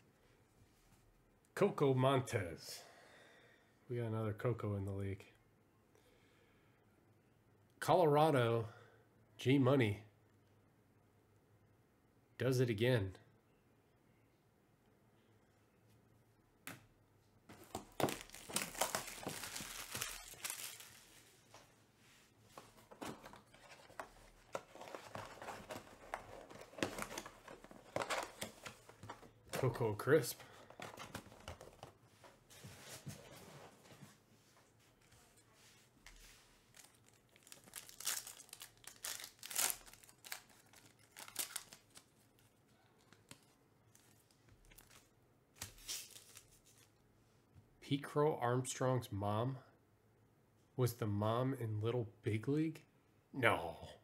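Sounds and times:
cardboard rustling: 17.5s - 21.7s, 22.4s - 34.2s
plastic shrink wrap tearing: 18.0s - 21.2s, 36.7s - 42.1s.

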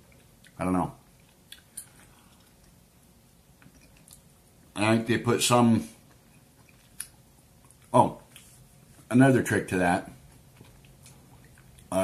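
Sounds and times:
faint gum chewing: 0.0s - 4.7s, 5.9s - 8.8s, 10.1s - 12.0s.

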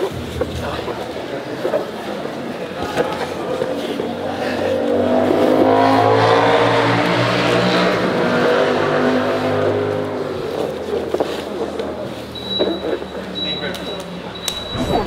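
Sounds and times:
vehicle engine passing by: 3.6s - 12.3s.

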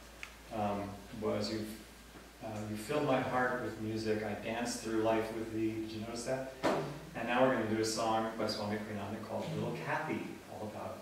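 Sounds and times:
man speaking: 0.5s - 1.8s, 2.4s - 11.0s
sharp knock: 6.6s - 7.0s.

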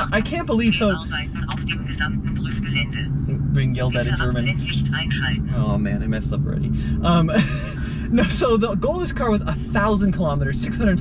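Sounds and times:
road and tyre hum: 0.0s - 11.0s.

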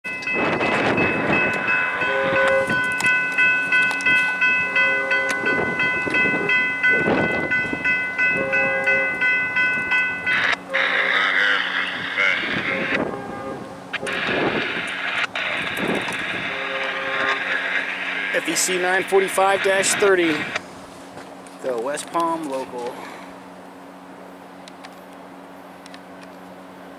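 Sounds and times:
crossing warning bell ringing: 0.0s - 20.6s
road noise: 0.0s - 26.9s
wind: 0.0s - 26.9s.

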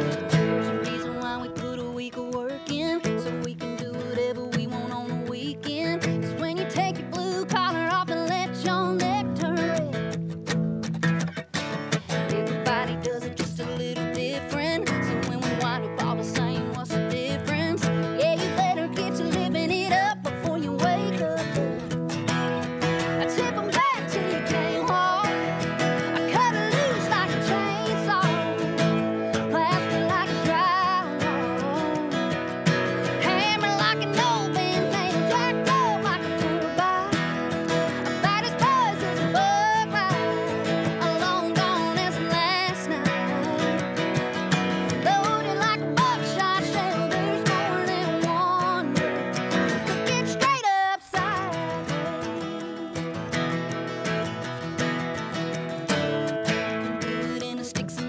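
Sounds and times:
woman singing: 0.0s - 10.3s, 11.7s - 54.6s, 55.2s - 58.0s
strummed acoustic guitars: 0.0s - 58.0s.

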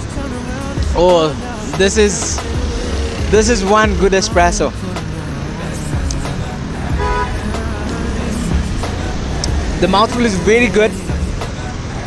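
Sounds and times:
street traffic rumble: 0.0s - 12.0s
car horn toot: 6.9s - 7.6s.

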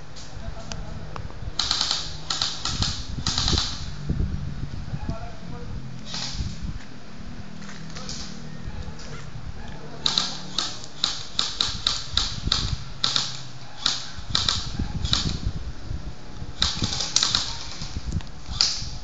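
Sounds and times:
sharp irregular clicks: 1.6s - 3.9s, 10.0s - 15.4s, 16.6s - 18.9s.

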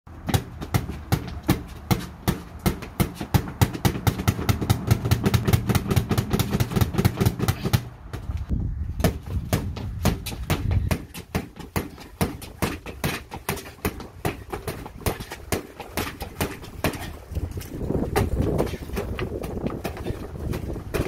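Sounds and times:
gloves hitting punching bag: 0.2s - 7.9s, 9.0s - 17.2s.

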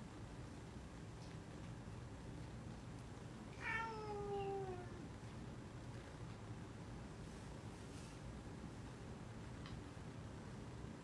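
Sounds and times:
faint room noise: 0.0s - 11.0s
meow-like call gliding down: 3.6s - 5.0s.

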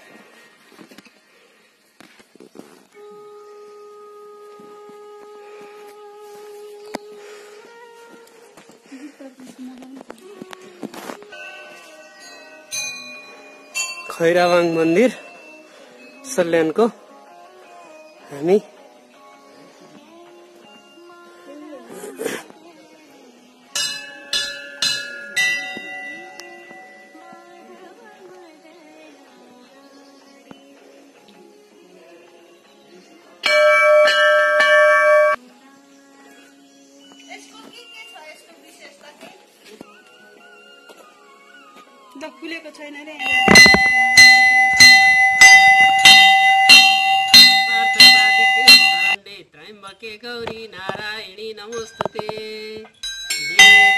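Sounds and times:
background music: 2.6s - 53.9s
brass bell ringing: 33.5s - 35.4s, 43.2s - 49.2s, 53.0s - 53.9s.

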